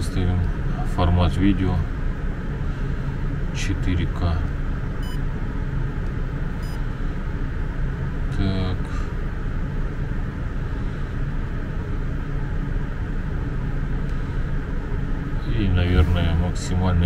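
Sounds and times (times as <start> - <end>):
low background rumble: 0.0 - 17.0
short hummed voice: 15.7 - 16.9.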